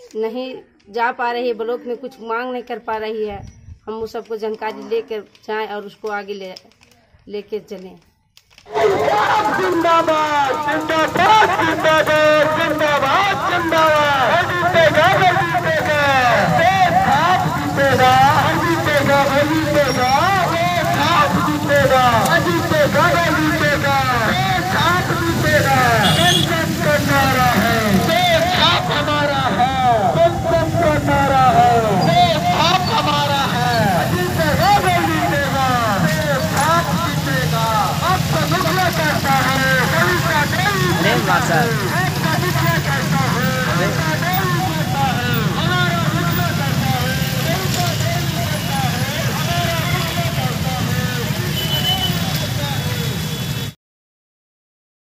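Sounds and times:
motorcycle engines rumbling: 8.5 - 53.8
people shouting: 8.7 - 46.4.

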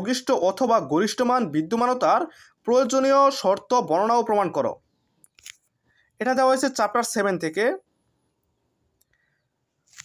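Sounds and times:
person speaking: 0.0 - 7.9.

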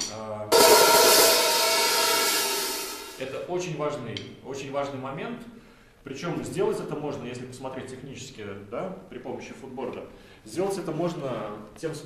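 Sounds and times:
half-open hi-hat struck: 0.0 - 4.5.

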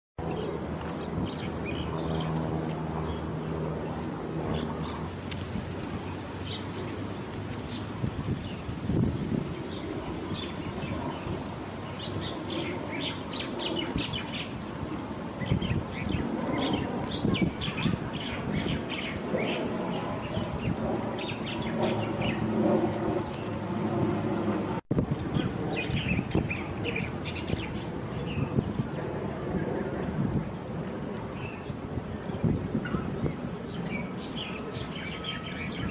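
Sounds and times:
low traffic rumble: 0.2 - 35.9
small birds chirping: 25.3 - 28.6.

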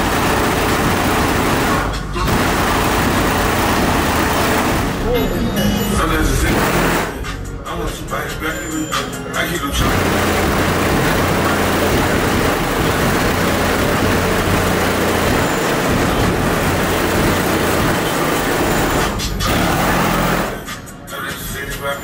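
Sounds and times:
loud distorted car stereo bass: 0.0 - 22.0.

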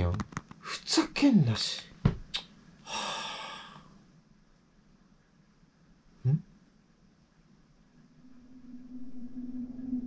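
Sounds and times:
person sighing: 2.8 - 3.9.

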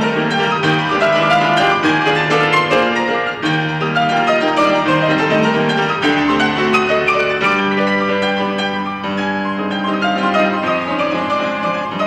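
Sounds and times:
grand piano quick notes: 0.0 - 12.0.

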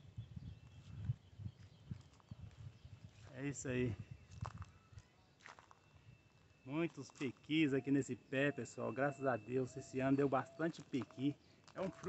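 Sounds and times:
faint footsteps: 0.6 - 3.6, 4.2 - 7.7, 10.8 - 12.0.

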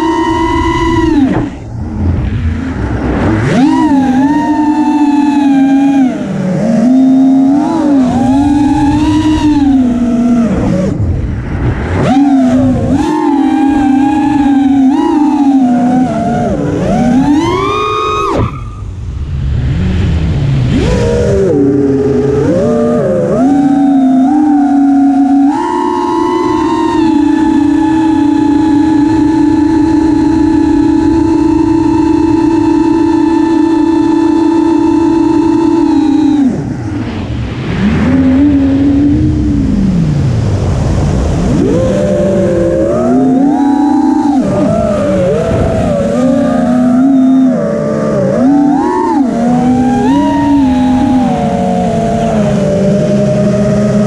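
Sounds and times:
quadcopter motors whining: 0.0 - 19.2, 20.7 - 40.5, 41.2 - 54.0.

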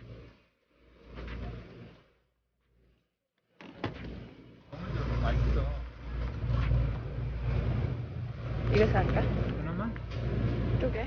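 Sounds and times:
steady low hum: 3.9 - 11.0.

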